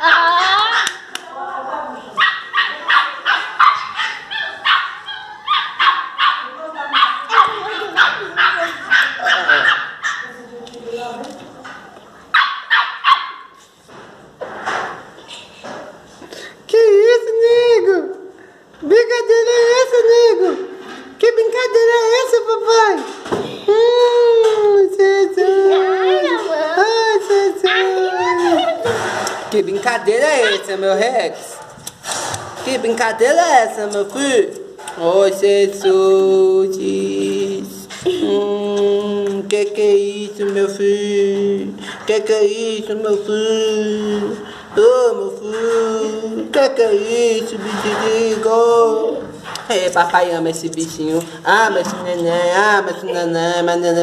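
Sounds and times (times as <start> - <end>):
dogs barking and yipping: 2.2 - 10.4, 12.3 - 13.6, 25.7 - 26.8, 30.2 - 30.8
small dog howling: 25.4 - 26.8.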